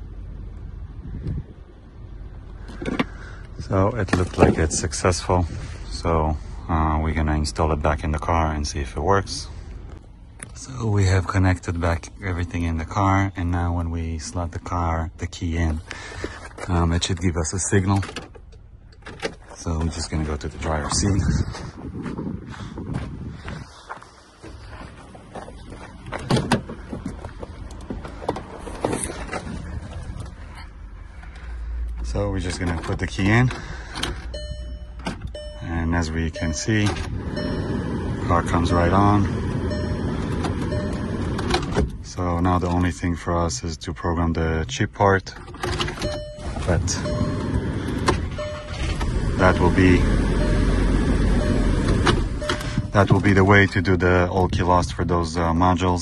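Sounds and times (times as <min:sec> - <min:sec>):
car engine idling: 0:24.2 - 0:42.3, 0:46.0 - 0:54.8.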